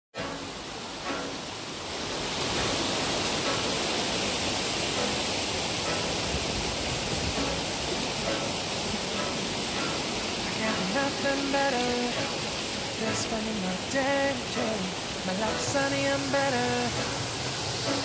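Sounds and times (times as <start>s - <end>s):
stream rushing: 0.2s - 18.0s.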